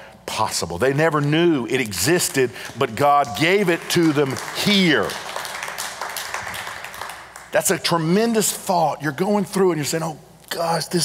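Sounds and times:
congregation applauding: 2.7s - 8.2s.

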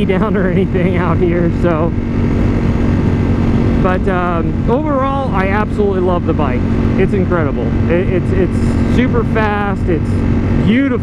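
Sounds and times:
motorcycle engine cruising: 0.0s - 11.0s
wind rush on microphone: 0.0s - 11.0s.

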